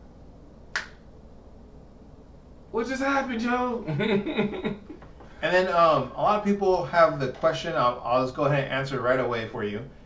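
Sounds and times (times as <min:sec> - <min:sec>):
finger snap: 0:00.7 - 0:01.1.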